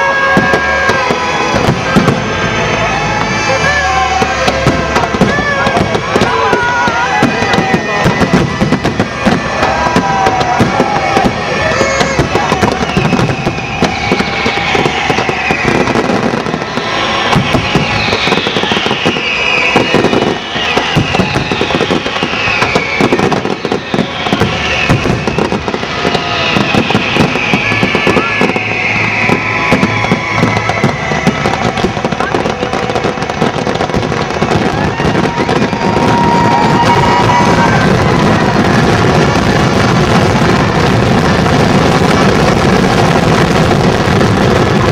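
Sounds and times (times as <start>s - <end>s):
fireworks bangs and crackling: 0.0s - 44.9s
falling whistles: 6.5s - 39.3s.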